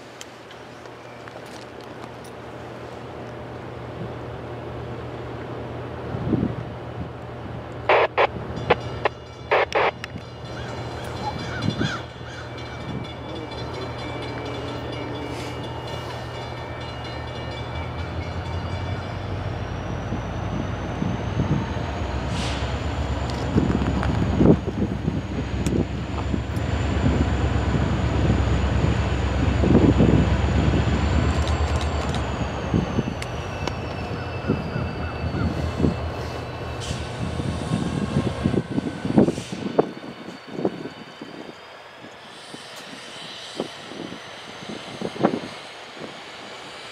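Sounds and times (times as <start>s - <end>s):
diesel locomotive engine rumble: 0.0s - 46.9s
high whine: 7.8s - 42.2s.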